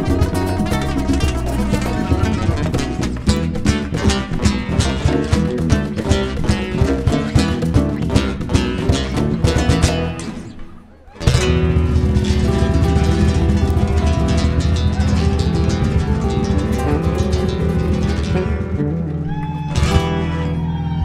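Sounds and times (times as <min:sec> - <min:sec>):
electric bass: 0:00.0 - 0:10.6, 0:11.2 - 0:21.0
acoustic guitars: 0:00.0 - 0:21.0
cajon drumming: 0:00.0 - 0:21.0.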